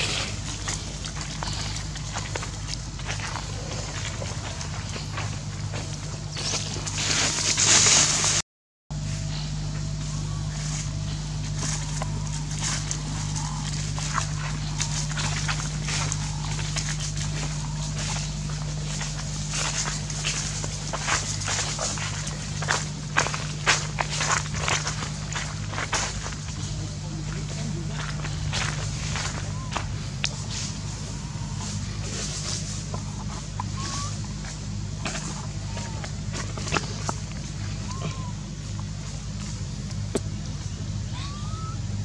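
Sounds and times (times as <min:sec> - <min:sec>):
footsteps in dry leaves: 0:00.0 - 0:08.4, 0:09.0 - 0:41.7
rustling leaves: 0:00.0 - 0:08.4, 0:09.0 - 0:42.0
steady low hum: 0:00.0 - 0:42.0.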